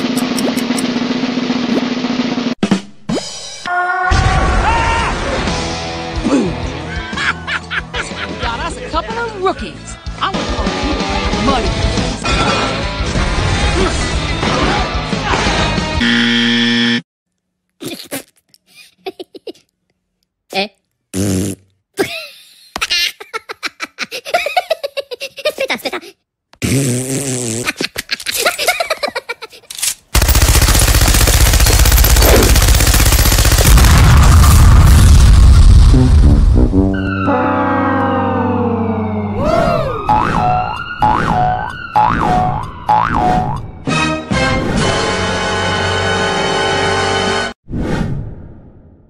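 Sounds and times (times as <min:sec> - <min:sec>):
background music: 0:05.1 - 0:16.0, 0:36.2 - 0:47.5
loud steady rushing blast: 0:30.2 - 0:36.9
cartoon sound effects: 0:36.0 - 0:43.7.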